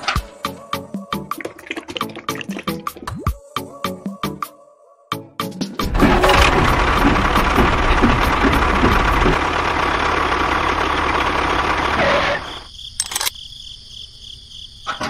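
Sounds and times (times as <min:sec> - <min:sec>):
tractor engine rumbling and knocking: 0:05.8 - 0:13.3
crickets chirring: 0:12.1 - 0:15.0
clicks: 0:13.0 - 0:13.3.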